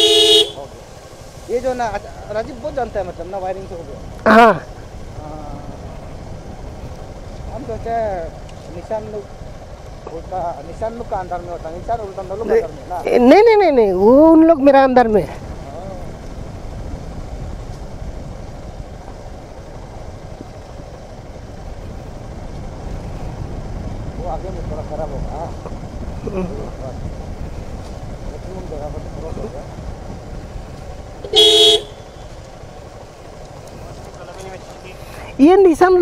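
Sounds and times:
motorcycle horn beep: 0:00.0 - 0:00.7, 0:31.2 - 0:32.3
motorcycle engine at low speed: 0:00.0 - 0:36.0
road rumble: 0:00.0 - 0:36.0.

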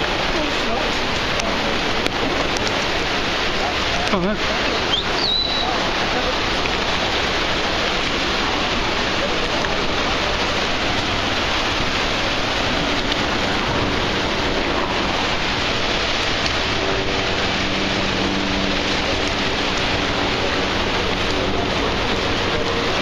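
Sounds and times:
rushing white water: 0:00.0 - 0:23.0.

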